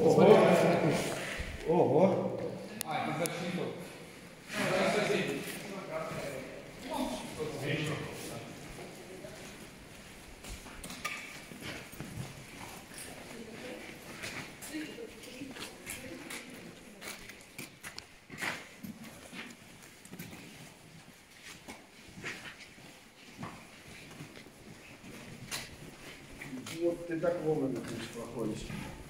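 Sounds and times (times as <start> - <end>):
footsteps on concrete floor: 3.3 - 29.0.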